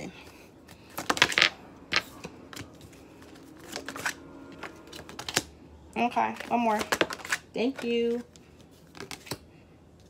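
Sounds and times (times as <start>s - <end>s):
card deck rustling: 0.7s - 5.5s, 6.3s - 9.5s.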